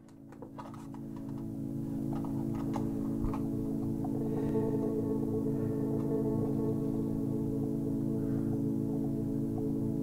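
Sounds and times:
ambient drone chord: 0.0 - 10.0.

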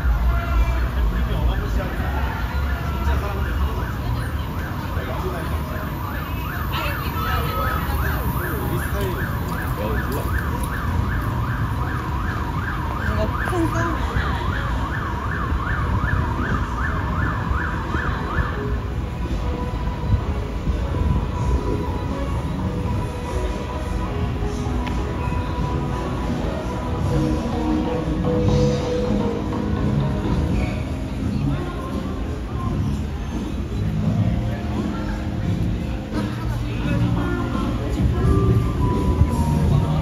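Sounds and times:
low rumble of street traffic: 0.0 - 40.0
siren yelping: 1.4 - 18.8.

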